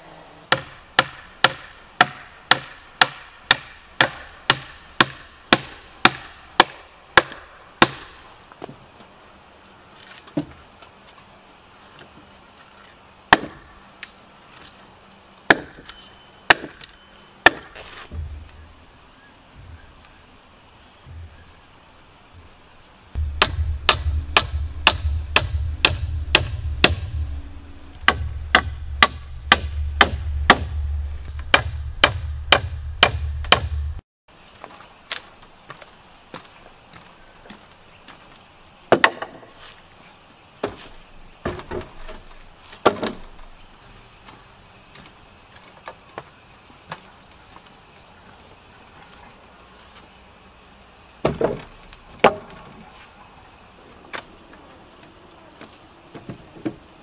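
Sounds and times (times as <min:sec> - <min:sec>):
hammer striking nails into wood: 0:00.5 - 0:08.1, 0:23.4 - 0:27.1, 0:28.0 - 0:30.8, 0:31.4 - 0:33.8
wooden boards knocking: 0:23.2 - 0:27.3, 0:28.0 - 0:34.0.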